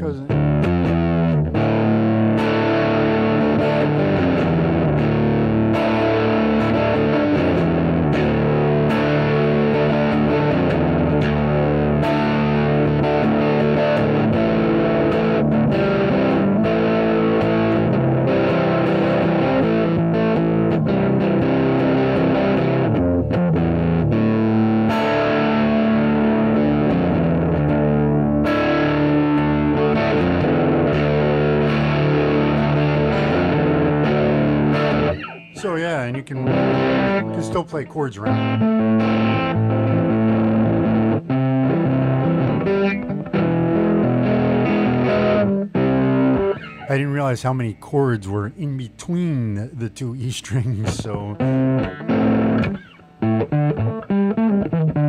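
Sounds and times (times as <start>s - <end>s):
distorted electric guitar riffing: 0.0s - 55.0s.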